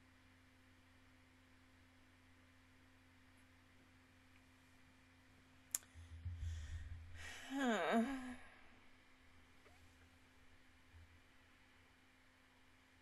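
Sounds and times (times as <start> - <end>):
woman breathing: 5.8 - 8.8
woman's loud voiced sigh: 7.2 - 8.6.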